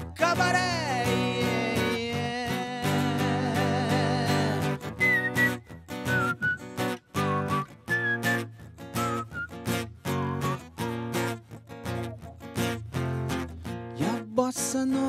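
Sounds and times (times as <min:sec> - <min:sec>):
acoustic guitar strumming: 0:00.0 - 0:15.0
whistled melody: 0:04.8 - 0:11.0.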